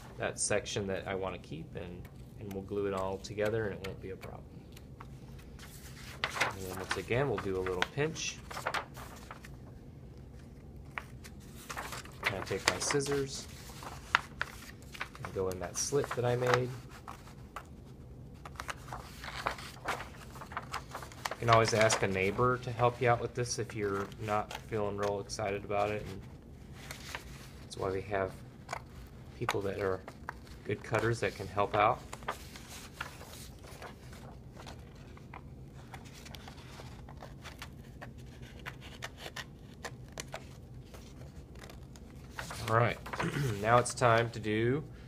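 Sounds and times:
paper rustling: 0:02.0 - 0:44.4.

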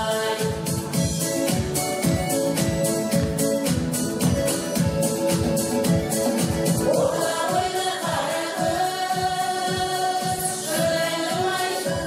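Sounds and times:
women singing together: 0:00.0 - 0:00.7, 0:06.8 - 0:12.0
instrumental accompaniment with beat: 0:00.0 - 0:12.0.

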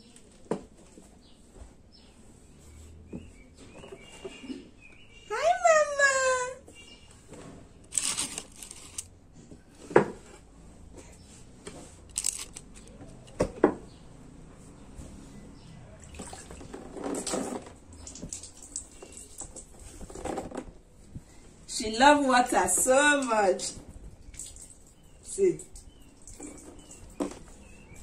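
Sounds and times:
water splashing in a bathtub: 0:16.0 - 0:20.3, 0:24.2 - 0:27.8.

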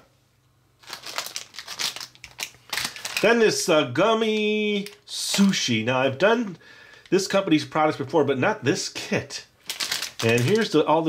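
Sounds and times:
plastic packaging crinkling: 0:00.8 - 0:06.2, 0:09.6 - 0:11.0.

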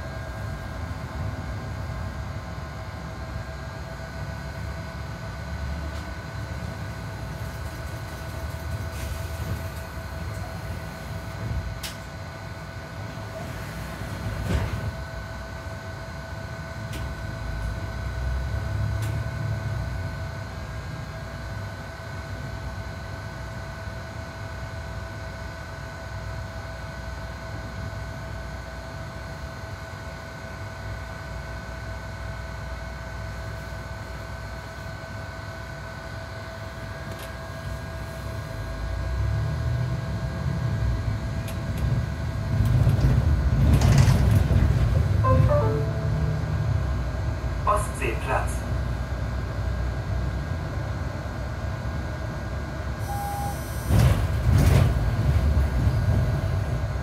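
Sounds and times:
bus engine rumble with whine: 0:00.0 - 0:57.0.

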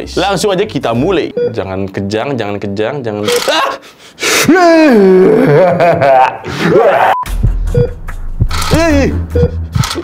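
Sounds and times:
short electronic beeps and clicks: 0:07.2 - 0:10.0.

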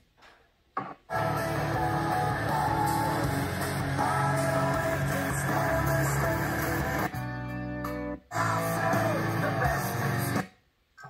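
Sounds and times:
guitar music from a speaker: 0:01.2 - 0:10.4.

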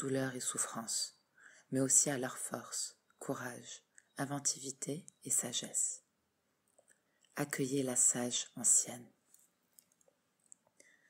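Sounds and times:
faint small clicks: 0:03.8 - 0:04.2, 0:06.6 - 0:07.4, 0:09.3 - 0:11.0.

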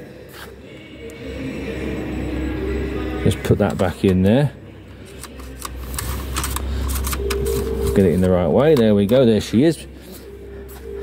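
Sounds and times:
dipstick clicking and scraping: 0:05.0 - 0:09.3.

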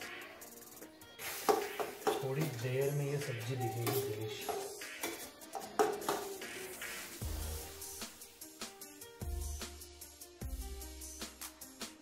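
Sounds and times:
background music: 0:00.0 - 0:12.0
spoon scraping and knocking wok: 0:01.2 - 0:02.2.

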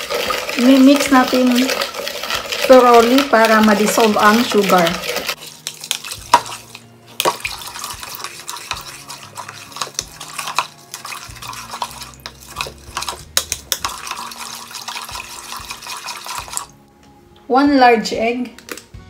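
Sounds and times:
spatula scraping a bowl: 0:00.0 - 0:16.7
liquid swishing: 0:00.0 - 0:16.8.

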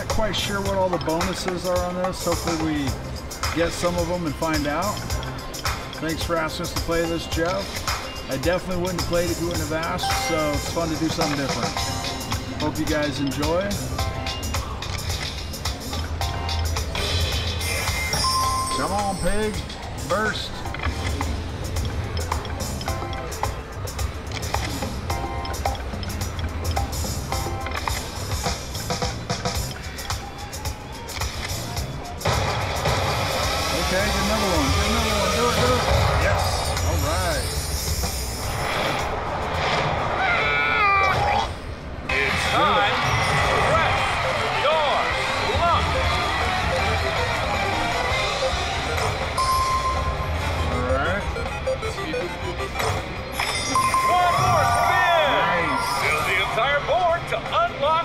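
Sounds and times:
casino background chatter: 0:00.0 - 0:32.2, 0:41.6 - 0:57.6
slot machine electronic music: 0:00.0 - 0:38.4, 0:42.5 - 0:56.7.

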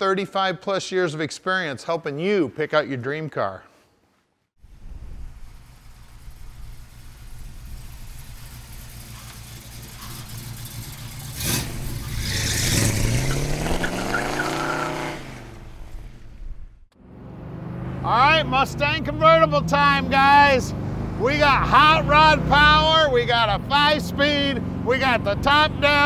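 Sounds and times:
car engine rumbling and accelerating: 0:04.6 - 0:26.0.

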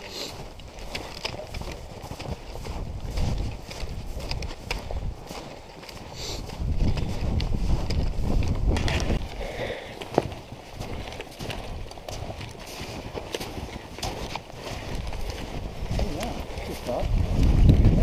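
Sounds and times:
boots crunching through snow: 0:00.0 - 0:18.0
low rumble on microphone: 0:16.9 - 0:18.0.

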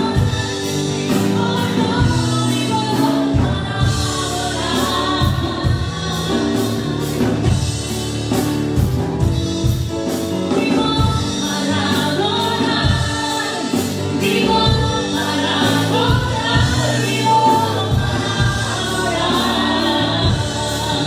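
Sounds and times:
voices singing praise song: 0:00.0 - 0:07.6, 0:10.8 - 0:21.0
steady drum beat: 0:00.0 - 0:21.0.

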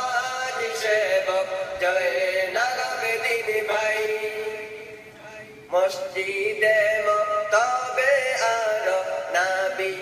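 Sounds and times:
man singing long notes: 0:00.0 - 0:10.0.

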